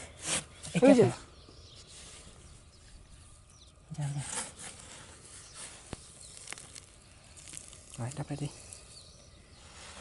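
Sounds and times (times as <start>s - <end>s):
tube pushed into dry soil: 4.2s - 10.0s.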